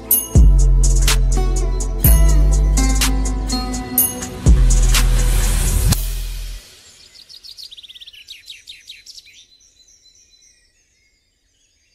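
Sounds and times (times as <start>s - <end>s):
birds chirping: 0.0s - 11.9s.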